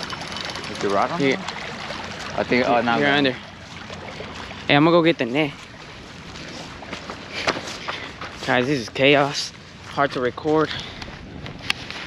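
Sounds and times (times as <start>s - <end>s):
footsteps on rough ground: 1.5s - 12.0s.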